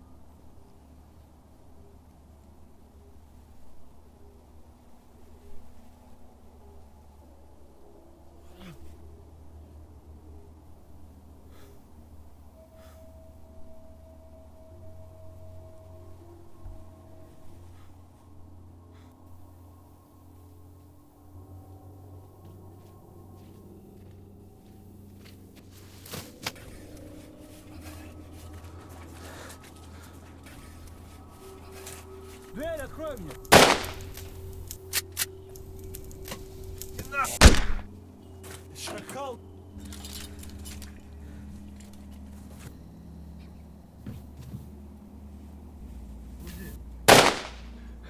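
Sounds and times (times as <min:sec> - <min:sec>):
faint sustained tones: 0:00.0 - 0:48.0
low steady hum: 0:00.0 - 0:48.0
loud gunshot: 0:33.5 - 0:34.0, 0:37.4 - 0:37.9, 0:47.1 - 0:47.7.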